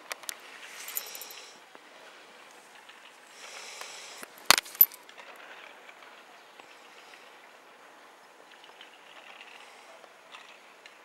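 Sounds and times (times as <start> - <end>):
outdoor background noise: 0.0 - 11.0
sharp clicks with ring: 0.9 - 1.4.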